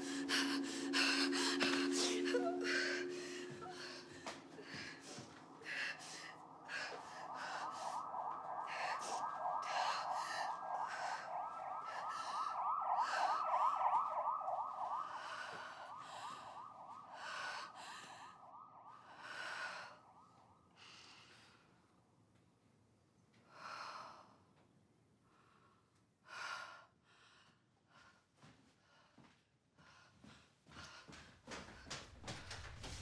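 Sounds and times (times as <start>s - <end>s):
warbling siren-like wail: 0.0s - 21.6s.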